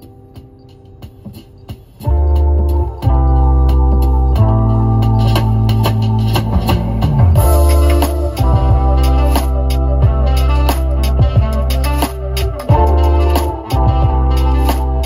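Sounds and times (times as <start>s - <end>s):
held keyboard and guitar notes: 0.0s - 15.0s
loud deep bass line: 2.0s - 15.0s.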